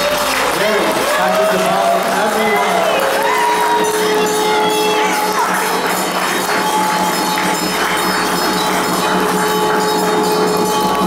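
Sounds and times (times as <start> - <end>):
held musical tones: 0.0 - 11.0
small hand bells ringing: 0.0 - 11.0.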